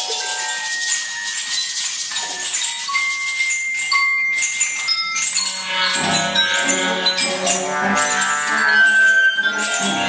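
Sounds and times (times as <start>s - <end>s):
chamber music ensemble: 0.0s - 10.0s
shimmering rattling high texture: 0.0s - 10.0s.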